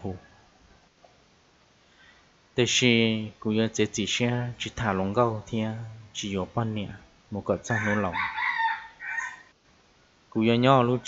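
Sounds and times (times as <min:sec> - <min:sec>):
person speaking a word: 0:02.6 - 0:08.2
animal call: 0:07.7 - 0:09.5.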